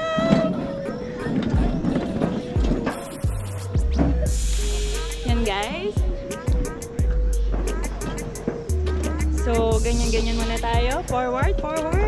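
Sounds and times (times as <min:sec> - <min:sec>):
woman shouting woo: 0:00.0 - 0:00.6
background music: 0:00.0 - 0:12.0.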